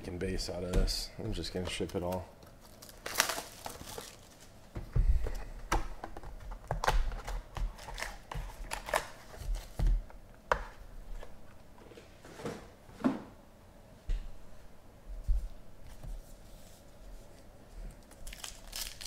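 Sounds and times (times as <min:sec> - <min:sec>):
foil packs rustling: 0:01.4 - 0:04.6, 0:18.2 - 0:19.0
wrapper crinkling and tearing: 0:01.8 - 0:04.6, 0:07.2 - 0:09.7, 0:18.0 - 0:19.0.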